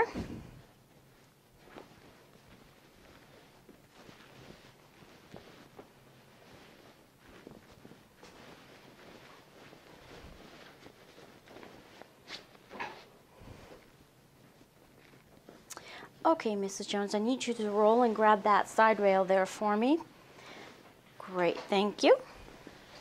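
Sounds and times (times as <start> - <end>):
bed sheets rustling: 0.0 - 15.7, 16.5 - 23.0.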